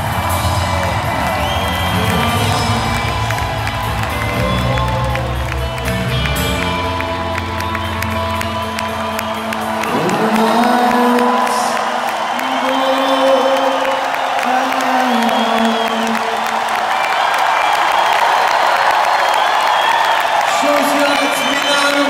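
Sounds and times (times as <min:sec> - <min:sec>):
low droning band music: 0:00.0 - 0:10.5
large crowd cheering: 0:00.0 - 0:22.0.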